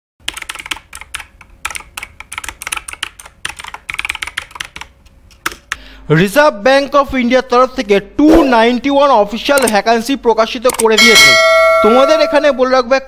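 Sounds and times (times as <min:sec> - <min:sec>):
keyboard typing: 0:00.2 - 0:05.8.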